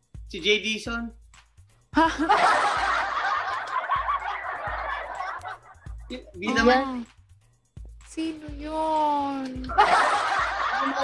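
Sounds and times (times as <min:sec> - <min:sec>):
group laughter: 0:02.0 - 0:06.6, 0:09.7 - 0:11.0.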